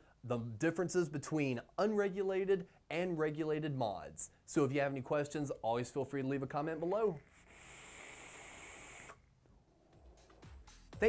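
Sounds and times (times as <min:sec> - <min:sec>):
electronic cigarette airy hiss: 0:06.8 - 0:10.3.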